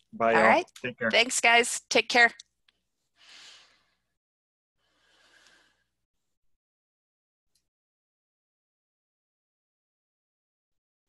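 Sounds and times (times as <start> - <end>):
faint breathy exhale: 4.9 - 5.9.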